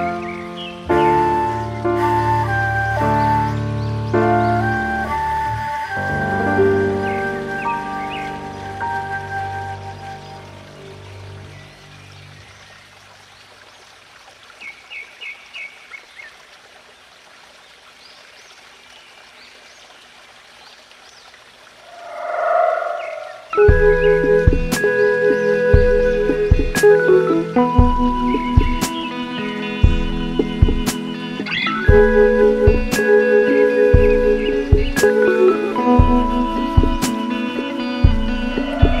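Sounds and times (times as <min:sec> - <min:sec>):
flute-led instrumental music: 0:00.0 - 0:11.6, 0:22.0 - 0:39.0
bird chirping: 0:00.0 - 0:12.9, 0:20.7 - 0:39.0
running water: 0:00.0 - 0:39.0
sustained tones and plucked notes: 0:21.9 - 0:39.0.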